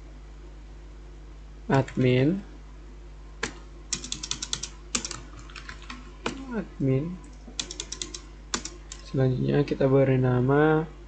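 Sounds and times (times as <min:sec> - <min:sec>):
computer keyboard typing: 0:01.7 - 0:02.1, 0:03.4 - 0:06.5, 0:07.6 - 0:09.2.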